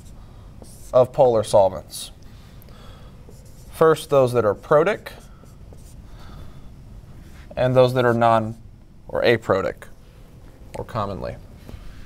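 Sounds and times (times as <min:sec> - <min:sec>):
marker scratching on whiteboard: 0:00.0 - 0:01.2, 0:03.3 - 0:06.0.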